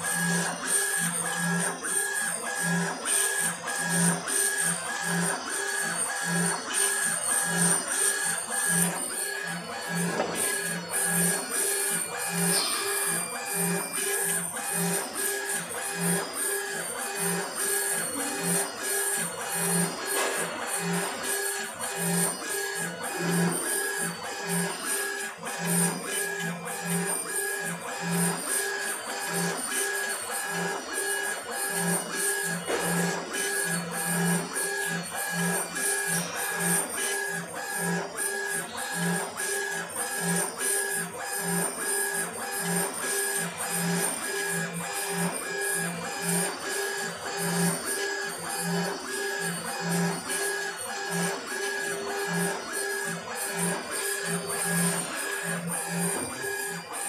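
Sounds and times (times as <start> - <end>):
laser engraver motors whining: 0.0 - 57.0.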